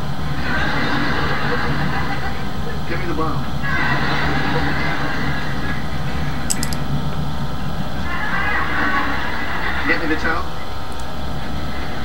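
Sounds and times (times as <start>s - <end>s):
quick faint clicks: 6.5s - 6.8s.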